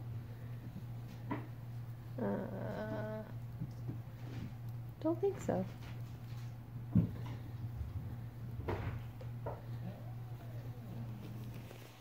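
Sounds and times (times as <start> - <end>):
steady low hum: 0.0 - 12.0
woman saying uh: 2.2 - 3.3, 5.0 - 5.7.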